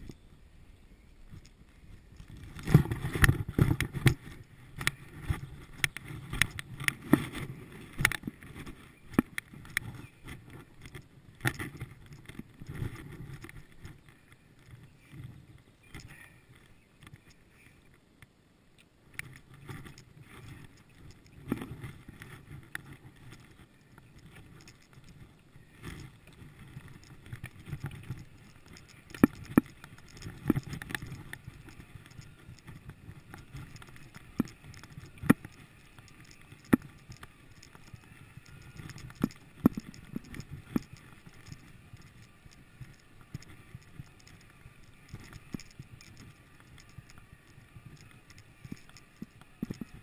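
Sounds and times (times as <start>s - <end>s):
bicycle tyres rumbling on dirt: 1.2s - 17.8s, 19.3s - 50.0s
bike rattling over bumps: 1.3s - 17.7s, 19.2s - 50.0s.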